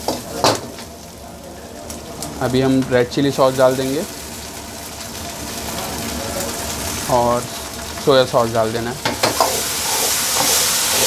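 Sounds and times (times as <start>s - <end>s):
food sizzling in a hot wok: 0.0s - 11.0s.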